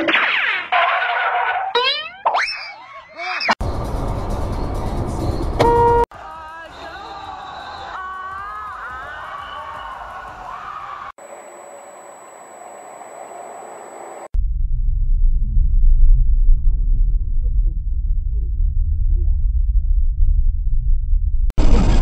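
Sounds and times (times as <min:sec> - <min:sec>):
horn-like toot: 0:05.6 - 0:06.0
thin high steady whine: 0:11.2 - 0:14.3.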